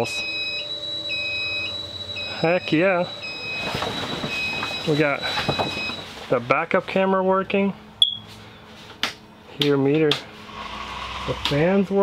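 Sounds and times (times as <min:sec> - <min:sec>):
high-pitched whine: 0:00.0 - 0:06.0, 0:10.4 - 0:12.0
electronic warning beeps: 0:00.0 - 0:06.1, 0:08.0 - 0:08.3.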